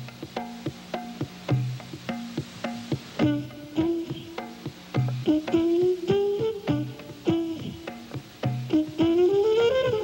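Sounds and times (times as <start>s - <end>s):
hand drums playing rhythm: 0.0s - 10.0s.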